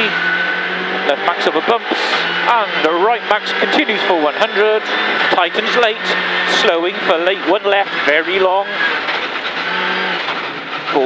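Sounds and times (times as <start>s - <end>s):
rally car engine: 0.0s - 11.0s.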